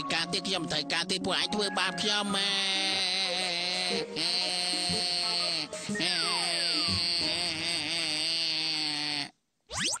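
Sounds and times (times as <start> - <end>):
cartoon background music: 0.0 - 8.4.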